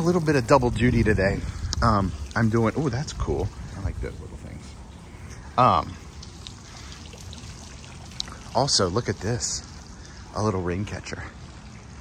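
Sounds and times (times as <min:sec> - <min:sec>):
fountain water trickling: 0:00.0 - 0:12.0.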